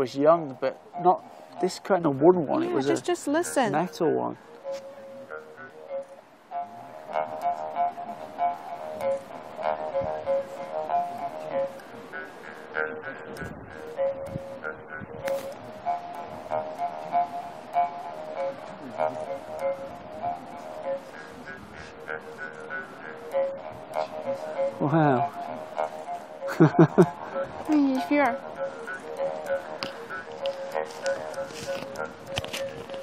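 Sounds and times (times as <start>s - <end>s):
mouth harp buzzing drone: 4.6s - 33.0s.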